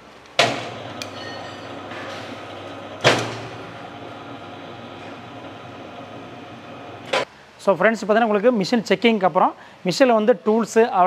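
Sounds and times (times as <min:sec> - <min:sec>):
sharp machine clunk: 0:00.4 - 0:04.0
bending machine motor humming: 0:00.4 - 0:07.2.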